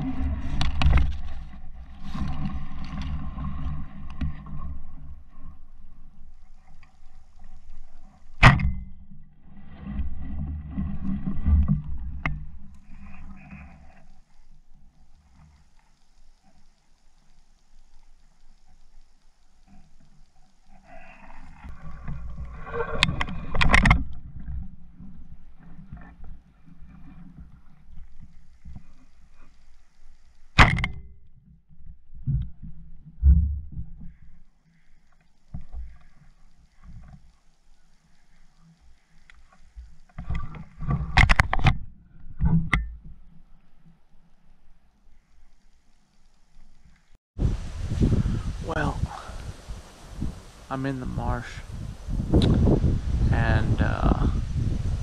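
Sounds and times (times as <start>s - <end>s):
rustling marsh grass: 0.0s - 30.8s, 32.6s - 42.4s, 43.0s - 55.0s.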